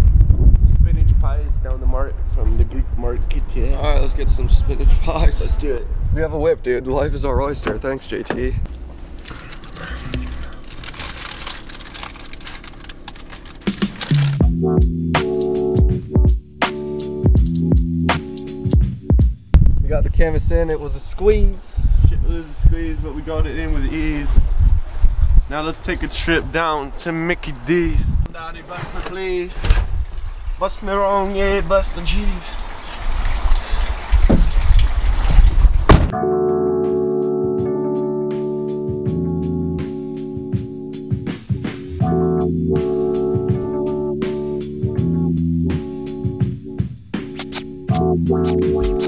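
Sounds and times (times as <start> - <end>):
steady low rumble: 0.0 - 7.5, 8.4 - 15.0
paper wrapper crinkling: 8.7 - 14.4
car liftgate slamming shut: 35.9 - 36.2.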